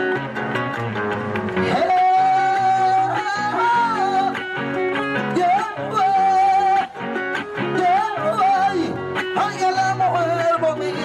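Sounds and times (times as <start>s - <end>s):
acoustic guitar accompaniment: 0.0s - 11.0s.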